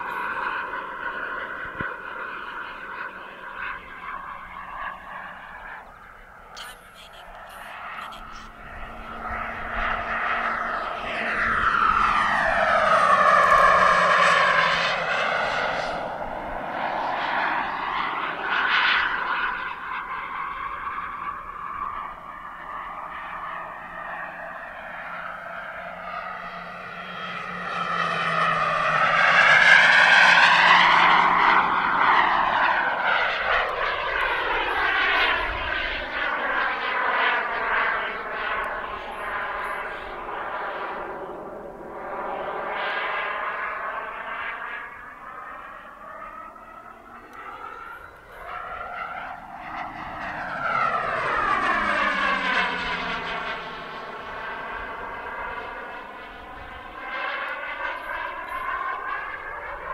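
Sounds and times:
model jet turbine whine: 0.0s - 59.9s.

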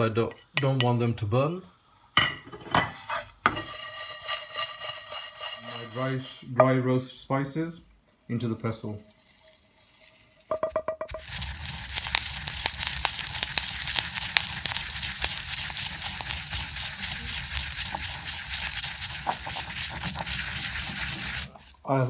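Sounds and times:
spices crunching in a mortar: 11.1s - 22.0s.

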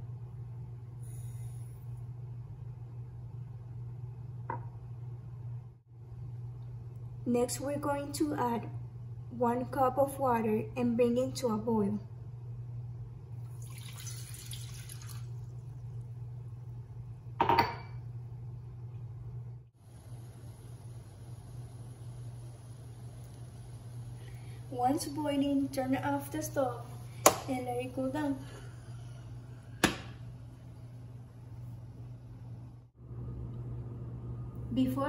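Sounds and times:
steady low hum: 0.0s - 13.7s, 14.7s - 35.0s
water pouring into a saucepan: 13.4s - 15.8s.

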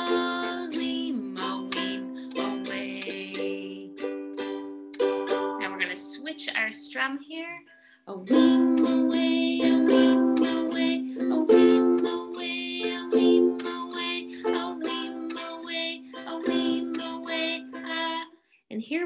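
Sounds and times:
ukulele strumming chords: 0.0s - 6.3s, 8.3s - 18.2s.

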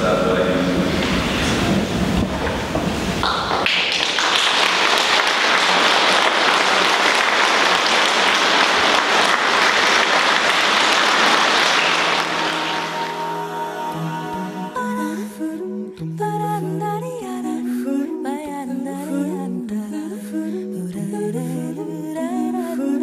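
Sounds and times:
audience applauding: 2.3s - 13.6s.

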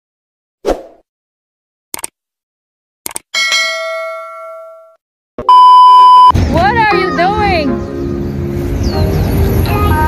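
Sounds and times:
notification bell ding: 3.4s - 5.0s.

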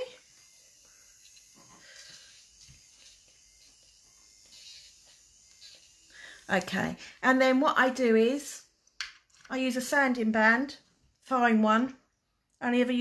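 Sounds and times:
electric nail drill rubbing: 0.0s - 7.2s.

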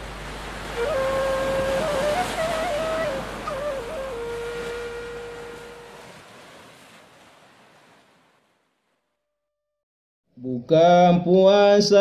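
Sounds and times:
waves: 0.0s - 9.1s
flute melody: 0.7s - 6.2s.

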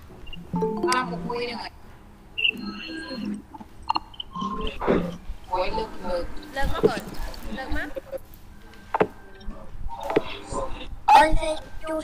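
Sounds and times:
voices talking over video call: 4.4s - 12.0s.

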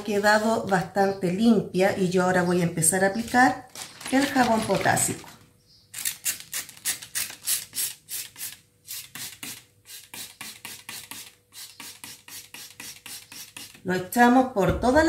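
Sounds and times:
spray bottle spritzing: 6.0s - 13.8s.

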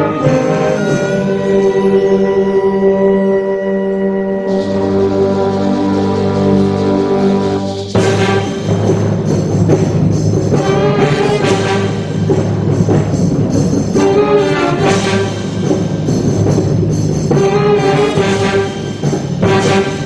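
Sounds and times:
wind band playing: 0.0s - 20.0s.

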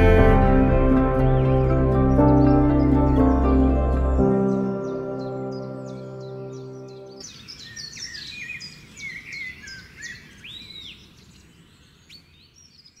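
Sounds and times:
held music chord: 0.0s - 7.2s
birds chirping and whistling: 1.0s - 13.0s.

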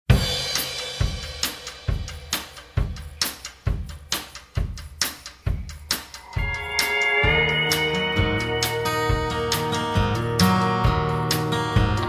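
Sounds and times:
bass drum and snare beat: 0.1s - 7.6s
cymbal crash: 5.9s - 10.4s.

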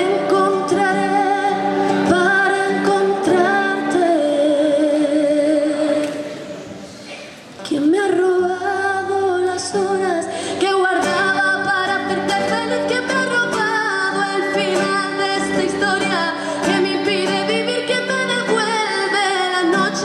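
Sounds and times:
woman singing: 0.0s - 6.3s, 7.6s - 20.0s
acoustic guitar: 0.0s - 20.0s.

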